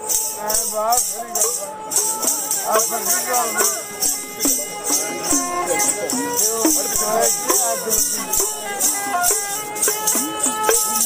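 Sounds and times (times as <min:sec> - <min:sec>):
iron tongs jingling rhythmically: 0:00.0 - 0:11.0
man singing or calling: 0:00.0 - 0:11.0.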